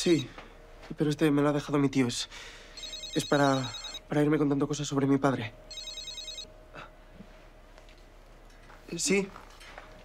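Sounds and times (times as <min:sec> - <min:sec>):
mobile phone ringtone trill: 0:02.8 - 0:04.1, 0:05.7 - 0:06.5.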